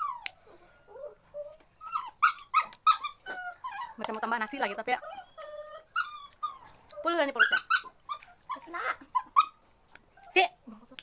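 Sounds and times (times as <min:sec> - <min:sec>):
dog whining and yelping: 0:00.0 - 0:10.4.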